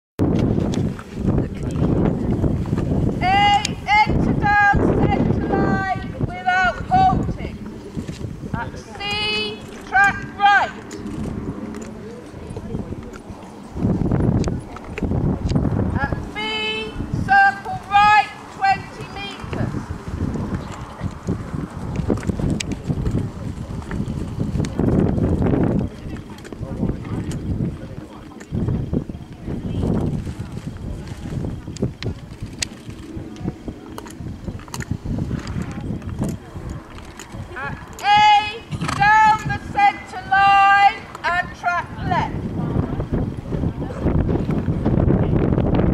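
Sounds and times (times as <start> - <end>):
wind rumbling on microphone: 0.2 - 45.9.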